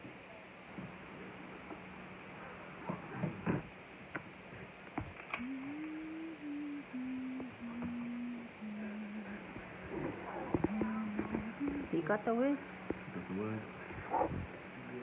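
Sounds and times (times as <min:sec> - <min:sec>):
person humming a slow tune: 0:05.3 - 0:12.0.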